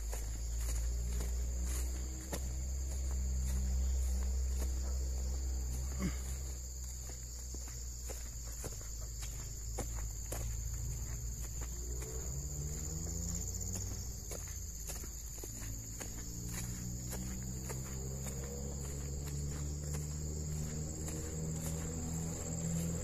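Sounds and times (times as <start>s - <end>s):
footsteps on dirt and grass: 0.0s - 23.0s
insect chorus: 0.0s - 23.0s.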